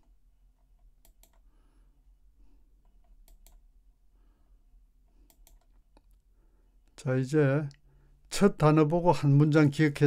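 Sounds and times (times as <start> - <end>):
computer mouse clicks: 0.6 - 1.5, 2.8 - 3.6, 5.2 - 6.2.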